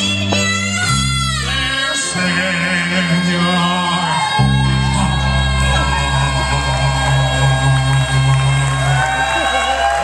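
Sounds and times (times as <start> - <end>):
person singing: 0.0 - 9.6
live band music: 0.0 - 10.0
low held bass notes: 0.0 - 10.0.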